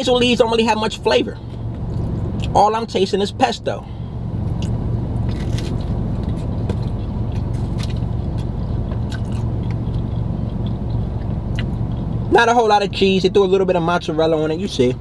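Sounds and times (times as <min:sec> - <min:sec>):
car interior low hum: 0:00.0 - 0:15.0
man chewing food: 0:04.4 - 0:12.3.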